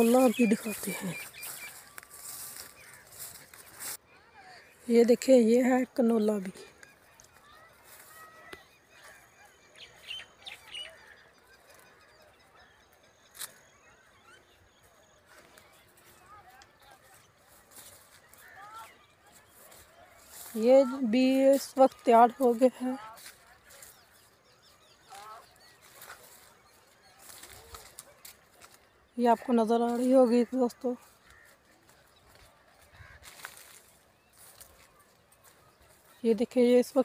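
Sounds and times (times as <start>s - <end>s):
faint high bird chirps: 6.7s - 17.0s.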